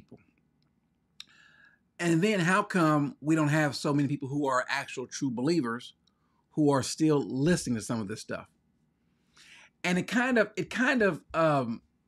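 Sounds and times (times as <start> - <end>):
mouth click: 0.6 - 1.4
faint intake of breath: 1.2 - 1.8, 9.1 - 9.8.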